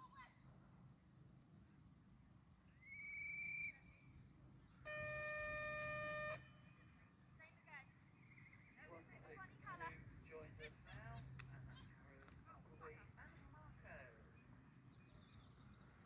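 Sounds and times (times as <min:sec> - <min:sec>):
low horn-like tone: 0:04.8 - 0:07.0.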